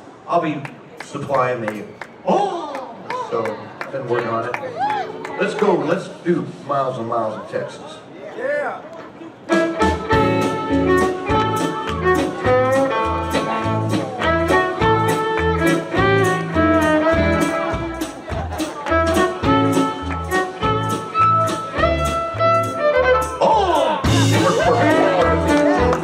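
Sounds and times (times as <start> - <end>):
western swing band playing: 4.7 - 7.5, 9.3 - 26.0
bowed fiddle melody: 9.5 - 23.5, 24.1 - 26.0.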